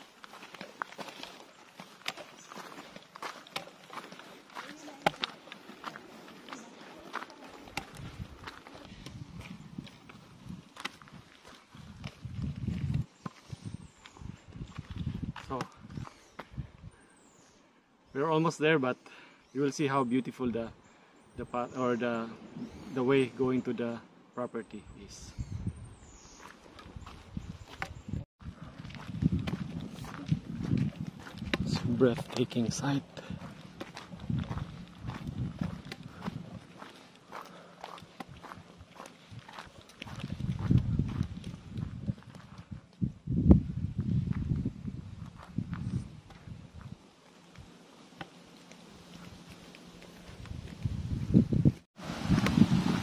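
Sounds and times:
footsteps on gravel: 0.0 - 16.5, 26.4 - 43.0, 44.1 - 51.3.

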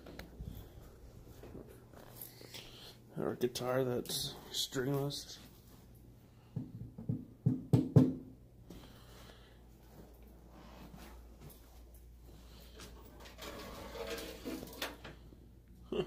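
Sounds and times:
soft rustling: 8.8 - 13.1.

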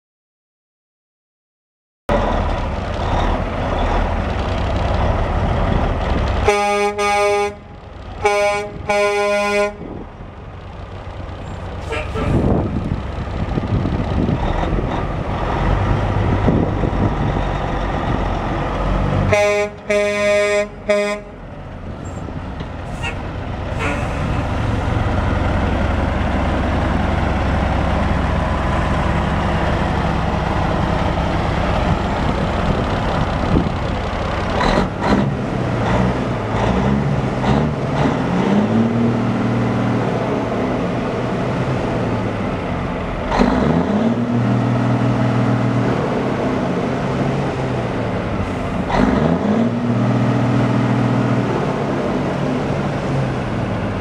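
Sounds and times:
truck horn blast: 6.4 - 10.0, 11.8 - 12.7, 19.3 - 21.4, 22.9 - 24.6
diesel truck engine idling: 7.6 - 35.8.

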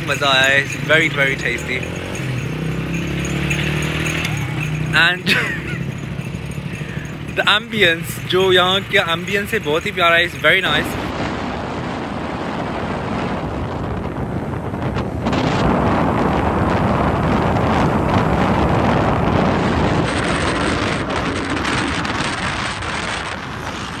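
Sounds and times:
vehicle road noise: 0.0 - 24.0
wind rushing over microphone: 0.0 - 24.0.

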